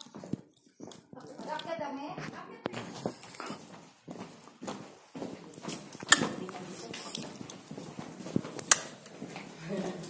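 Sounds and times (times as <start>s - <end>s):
footsteps on stone floor: 0.0s - 10.0s.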